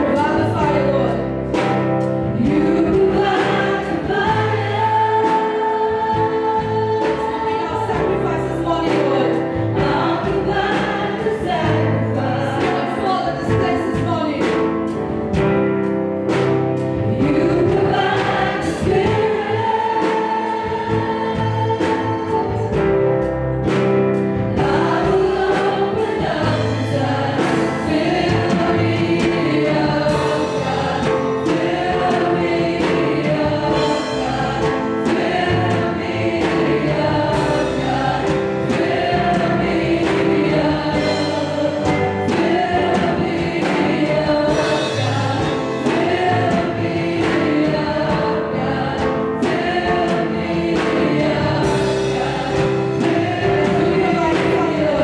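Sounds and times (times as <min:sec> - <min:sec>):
accompaniment with steady beat: 0:00.0 - 0:55.0
group singing gospel song: 0:00.0 - 0:55.0.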